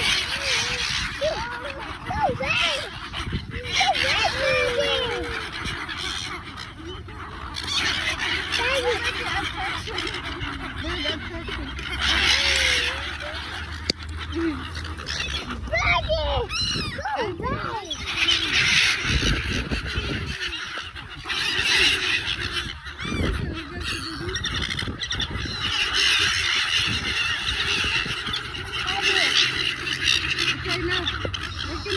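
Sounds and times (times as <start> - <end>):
gulls squawking: 0.0 - 31.9.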